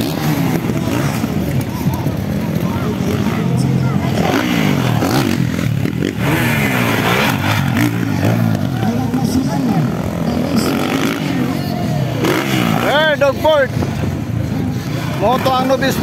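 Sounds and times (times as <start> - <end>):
dirt bike engines revving: 0.0 - 16.0.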